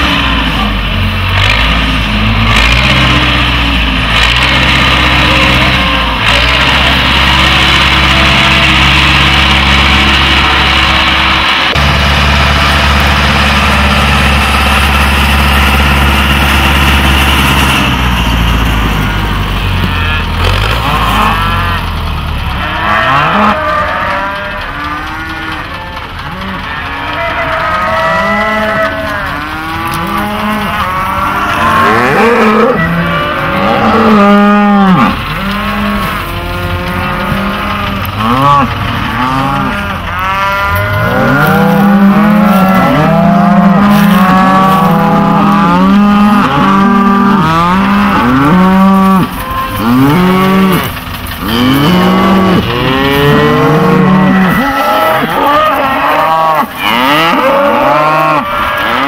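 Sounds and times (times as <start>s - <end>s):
tractor engine running: 0.0s - 59.0s
cattle mooing: 1.4s - 11.8s, 18.9s - 59.0s.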